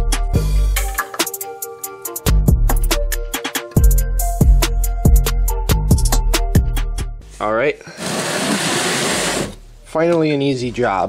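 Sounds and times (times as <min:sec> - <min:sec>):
plastic pan scraping on concrete: 0:08.0 - 0:09.6.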